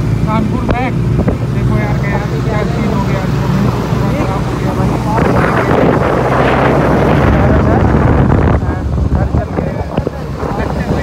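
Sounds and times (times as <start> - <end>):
motorcycle engine running: 0.0 - 11.0
wind rushing past microphone: 0.0 - 11.0.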